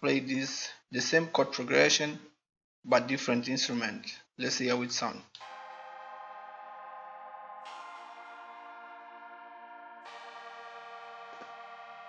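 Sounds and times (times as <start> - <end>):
sustained synth chords: 5.4 - 12.0.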